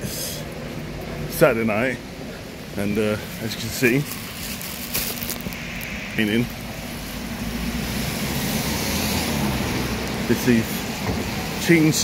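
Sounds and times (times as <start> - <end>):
car passing on wet road: 5.4 - 12.0.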